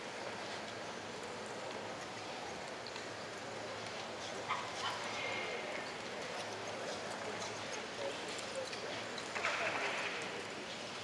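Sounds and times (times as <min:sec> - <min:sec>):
indoor arena background noise: 0:00.0 - 0:11.0.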